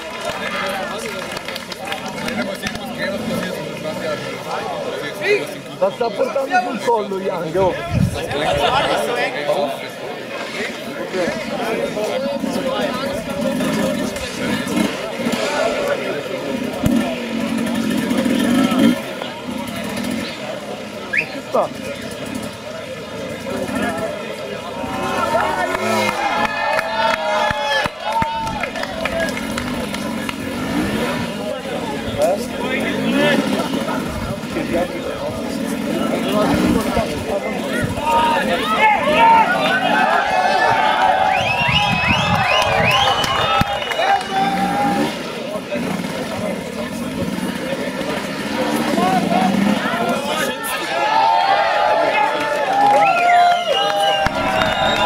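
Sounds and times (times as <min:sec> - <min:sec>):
spectators chatting and shouting: 0:00.0 - 0:55.0
motorcycle engine revving: 0:01.9 - 0:05.1, 0:10.3 - 0:26.5, 0:28.6 - 0:40.1, 0:41.2 - 0:50.6, 0:54.2 - 0:55.0.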